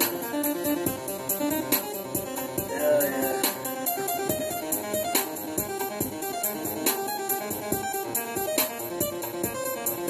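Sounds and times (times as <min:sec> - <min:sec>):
steady drum beat: 0:00.0 - 0:08.1.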